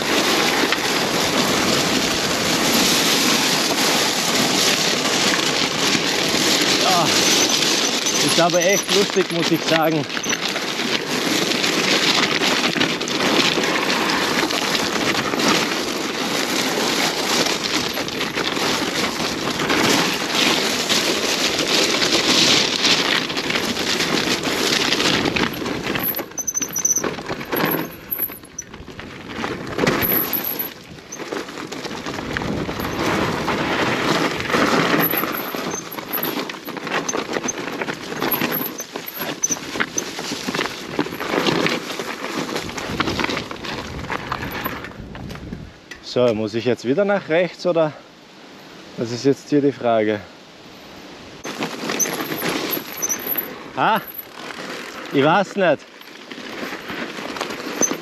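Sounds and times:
bike tyres crunching over stones: 0:00.0 - 0:46.7, 0:51.4 - 0:58.0
bike frame clattering: 0:06.6 - 0:10.9, 0:21.7 - 0:28.7, 0:32.8 - 0:42.4, 0:51.4 - 0:55.3
disc brakes squealing: 0:07.0 - 0:09.0.

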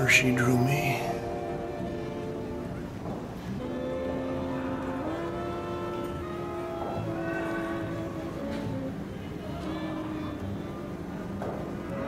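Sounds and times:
big band horn chords: 0:00.0 - 0:12.0.

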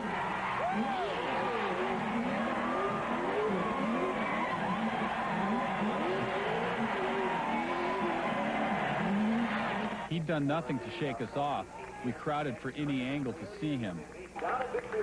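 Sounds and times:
crowd shouting and cheering: 0:00.0 - 0:15.0.

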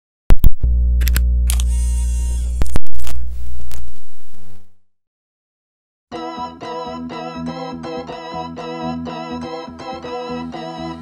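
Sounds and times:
loud click: 0:00.4 - 0:01.8
low electrical hum: 0:00.6 - 0:04.8.

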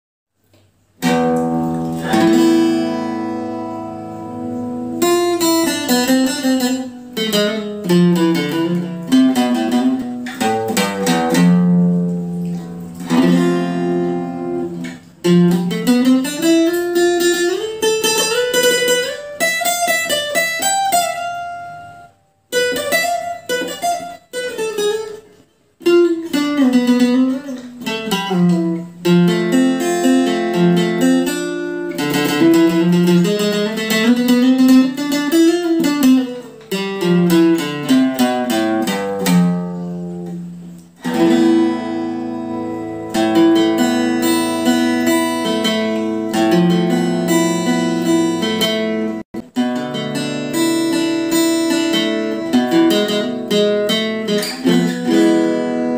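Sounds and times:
acoustic guitar plucked melody: 0:00.4 - 0:55.9.

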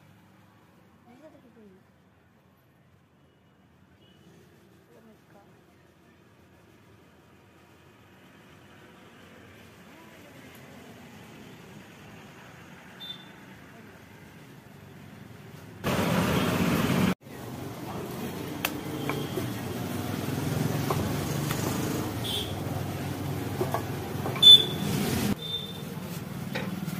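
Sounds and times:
traffic noise: 0:00.0 - 0:26.9.

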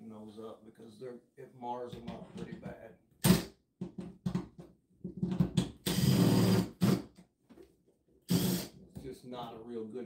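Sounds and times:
impact wrench bursts: 0:05.8 - 0:07.1, 0:08.3 - 0:08.8.

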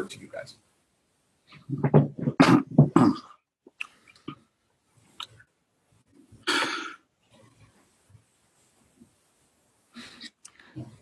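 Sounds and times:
person coughing: 0:06.4 - 0:07.0.

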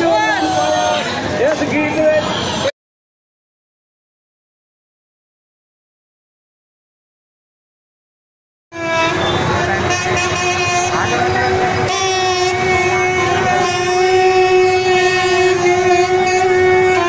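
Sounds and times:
crowd noise and voices: 0:00.0 - 0:02.7, 0:08.8 - 0:17.0
long held pitched tone: 0:08.8 - 0:17.0.

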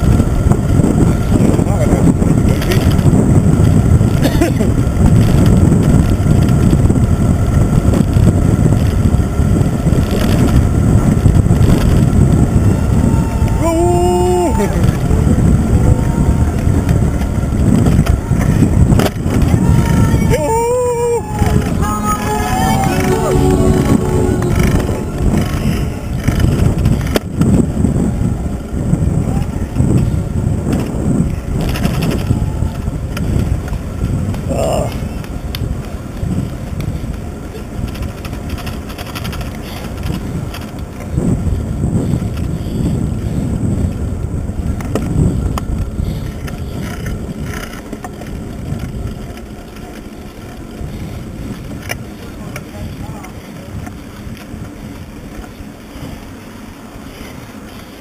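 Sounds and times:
bicycle tyre and road rumble: 0:00.0 - 0:58.0
wind buffeting microphone: 0:00.0 - 0:58.0.

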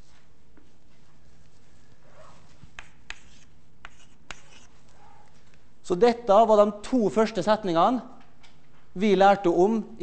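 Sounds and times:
chalk scratching on blackboard: 0:02.2 - 0:05.0
chalk tapping against board: 0:02.7 - 0:04.7.

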